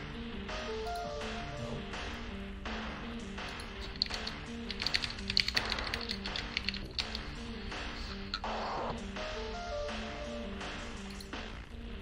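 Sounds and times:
background music low melody: 0.0s - 12.0s
typing on computer keyboard: 3.8s - 7.4s.

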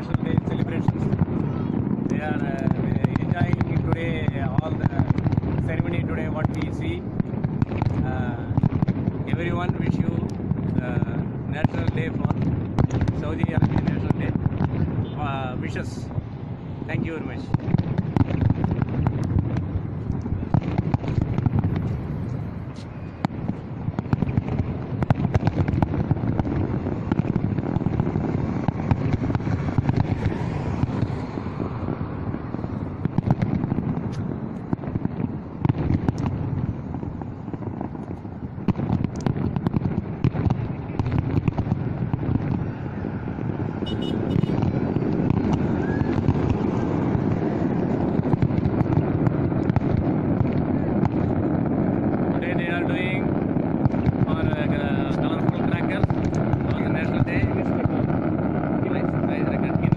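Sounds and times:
fireworks bangs and crackles: 0.0s - 59.9s.

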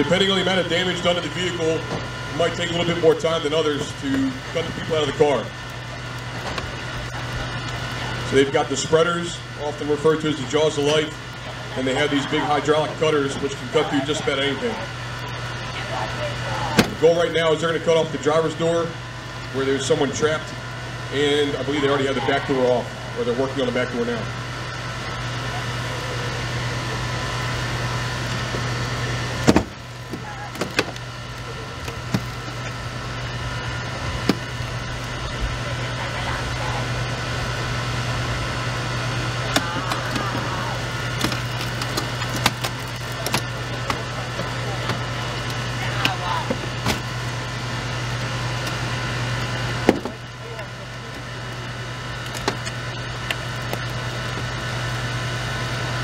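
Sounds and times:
hydraulic power unit running: 0.0s - 56.0s.

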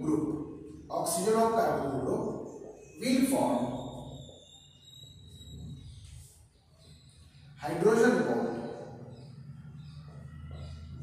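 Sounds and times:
marker squeaking on whiteboard: 0.0s - 11.0s.

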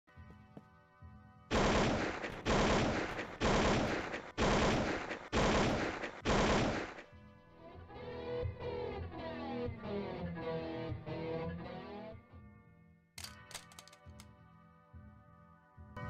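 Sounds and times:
music: 0.0s - 16.0s
automatic rifle fire: 1.5s - 7.1s.

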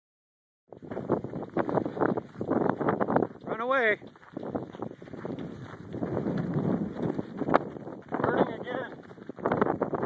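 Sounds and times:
wind buffeting microphone: 0.7s - 10.0s
footsteps on gravel: 0.8s - 10.0s.

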